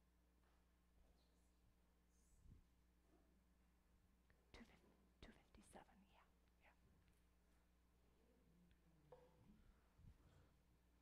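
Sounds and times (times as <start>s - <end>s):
faint whispers: 4.5s - 6.9s.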